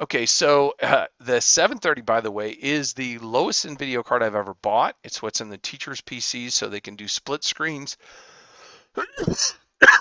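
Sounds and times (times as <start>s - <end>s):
man laughing under his breath: 0.8s - 1.2s, 9.0s - 10.0s.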